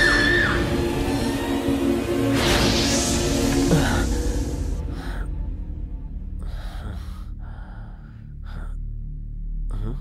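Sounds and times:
person breathing: 3.7 - 9.0.

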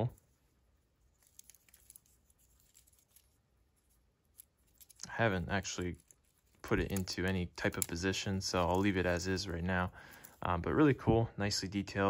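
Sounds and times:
faint plastic clicks and rustles: 0.0 - 10.5.

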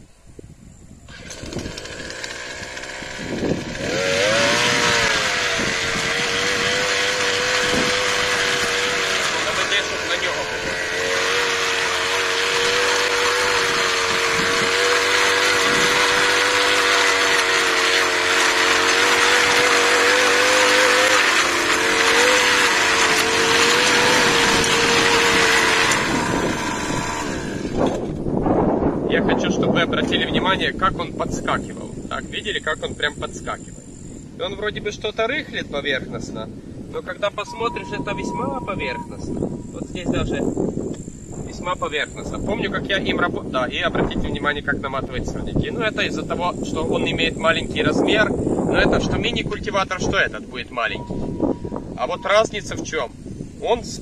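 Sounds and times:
brush cutter engine revving: 1.1 - 28.3, 37.0 - 54.0
tines churning dry soil: 1.1 - 28.4, 37.0 - 54.0.

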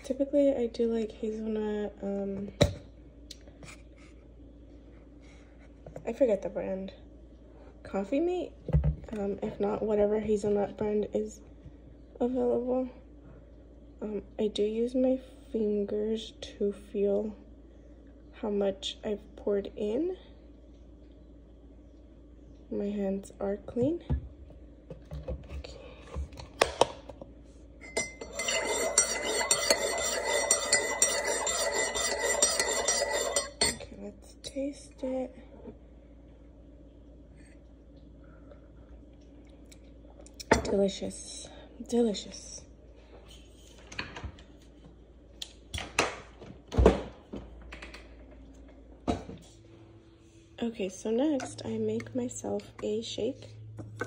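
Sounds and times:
spoon clinking in mug: 27.8 - 33.8.

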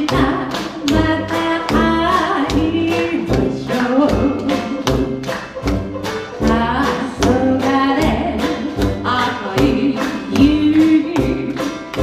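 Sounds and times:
woman singing: 0.0 - 5.3, 6.4 - 12.0
jazz band playing: 0.0 - 12.0.

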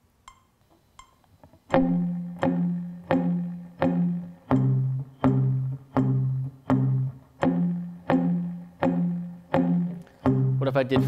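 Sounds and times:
metronome ticking: 0.2 - 11.0
electric guitar power chords: 1.7 - 11.0.

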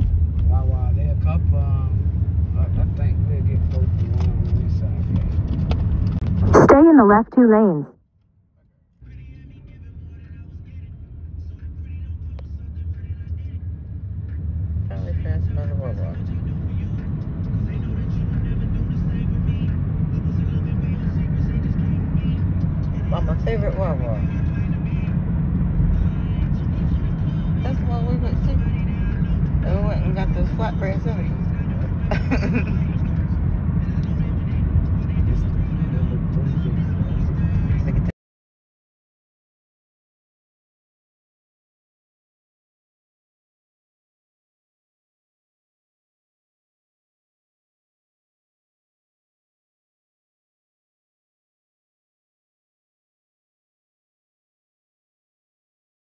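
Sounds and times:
car cabin road rumble: 0.0 - 6.8, 9.1 - 38.1.

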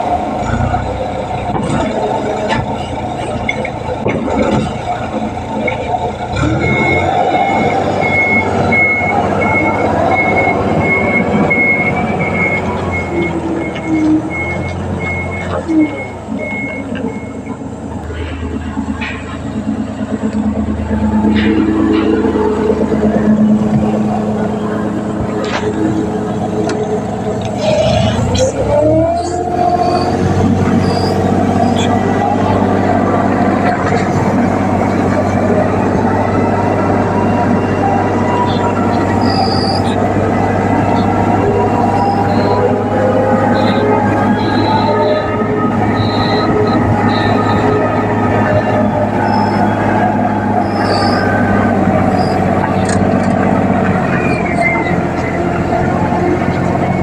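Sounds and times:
diesel engine revving under load: 0.0 - 57.0
backup alarm beeping: 6.5 - 17.6, 36.4 - 50.0.

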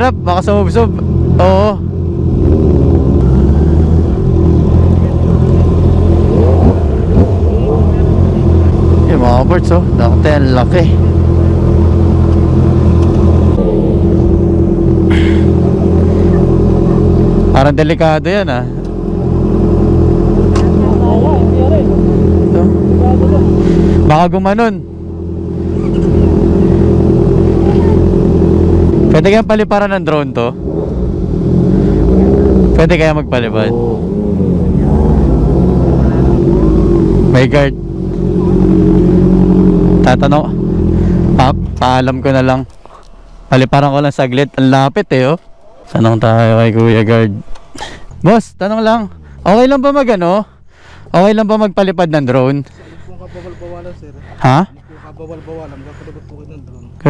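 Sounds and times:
motorcycle engines idling: 0.0 - 57.0.

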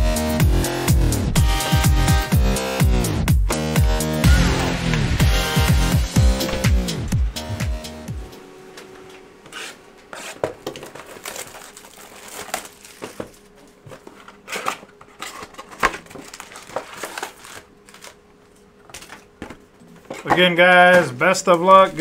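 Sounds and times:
music: 0.0 - 8.8
card pack wrappers crinkling: 10.7 - 18.2.

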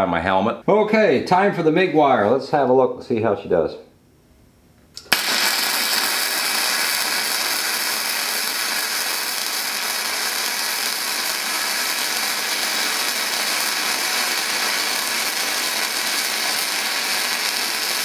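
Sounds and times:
welding arc crackling sizzle: 5.0 - 18.0.

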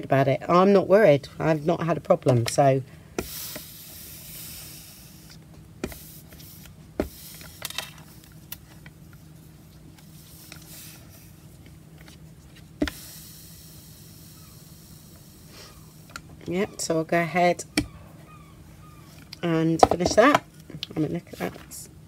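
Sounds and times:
faint low hum: 0.0 - 22.0.

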